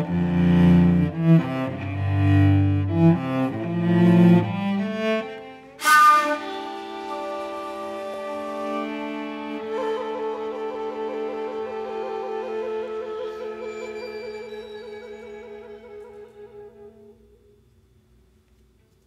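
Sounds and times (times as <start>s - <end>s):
violin: 0.0s - 17.6s
cello notes: 0.0s - 17.7s
shakuhachi flute: 5.8s - 17.8s.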